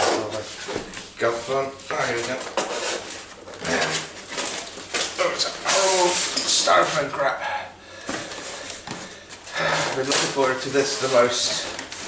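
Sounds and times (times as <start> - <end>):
person speaking: 5.1 - 7.8, 9.6 - 11.9.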